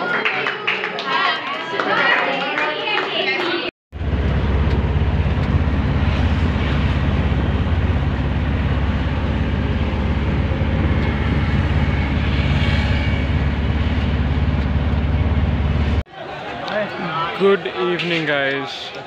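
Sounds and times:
vehicle engine and road noise: 0:03.9 - 0:16.0.

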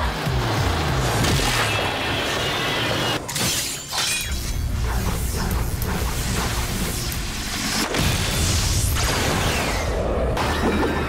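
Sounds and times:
fight-scene music: 0:00.0 - 0:11.0.

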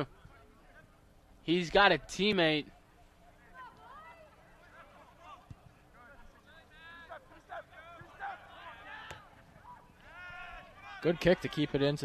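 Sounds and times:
distant shouts and calls: 0:02.7 - 0:12.0.

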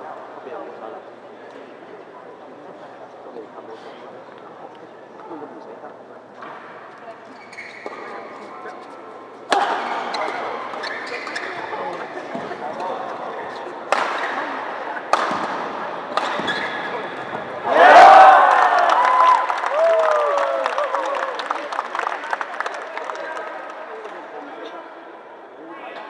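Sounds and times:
racket hitting shuttlecock: 0:13.9 - 0:17.5.

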